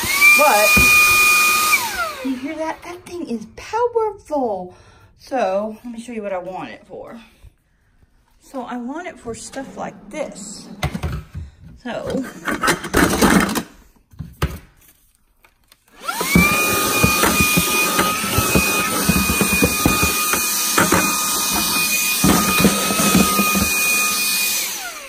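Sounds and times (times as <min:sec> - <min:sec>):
handheld vacuum motor whining: 0:00.0 - 0:02.9, 0:15.9 - 0:25.0.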